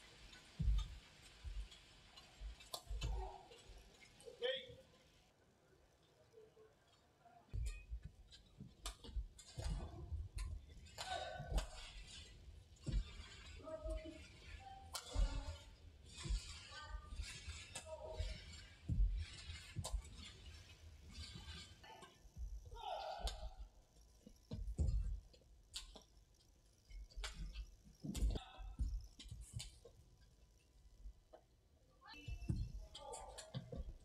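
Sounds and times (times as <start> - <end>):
shoes squeaking and thudding: 7.5 - 23.6, 26.9 - 29.9, 32.2 - 34.0.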